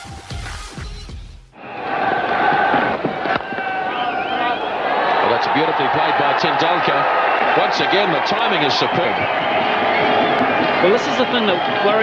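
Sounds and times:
crowd cheering and chanting: 1.6s - 12.0s.

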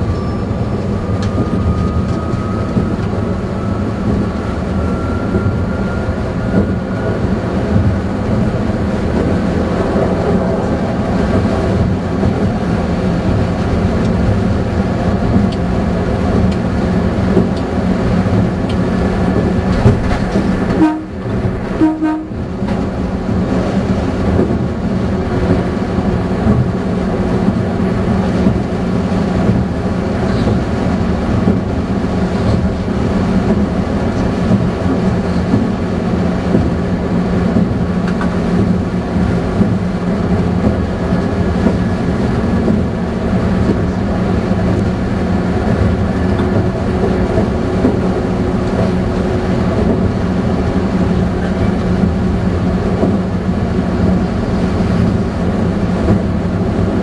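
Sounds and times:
oncoming train passing: 0.0s - 57.0s
train interior hum: 0.0s - 57.0s
train wheel noise: 0.0s - 57.0s
rail-joint clatter: 6.2s - 57.0s.

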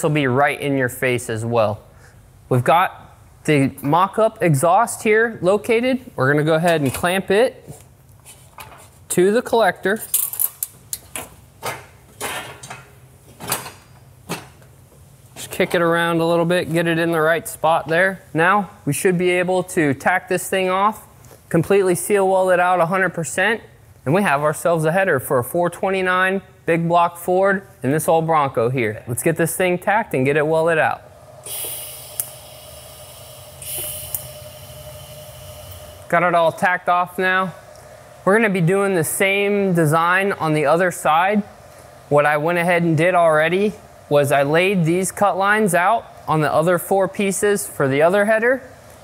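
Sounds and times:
steady hum: 10.6s - 49.0s
welding arc hissing: 31.0s - 38.3s
welder click: 31.4s - 36.1s.

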